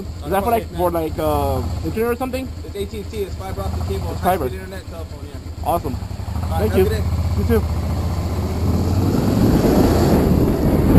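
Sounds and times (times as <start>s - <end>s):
motorcycle engine accelerating: 0.0s - 10.9s
wind rush on microphone: 8.5s - 10.9s.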